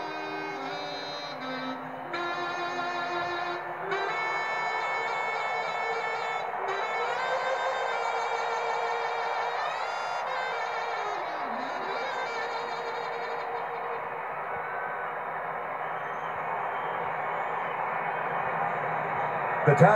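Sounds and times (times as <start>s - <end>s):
saxophone held wavering note: 0.0s - 14.9s
stadium crowd cheering and applauding: 0.0s - 19.9s.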